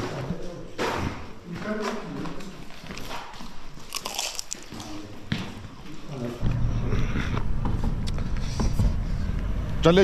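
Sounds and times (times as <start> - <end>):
crisp pastry crunching: 3.8 - 5.0.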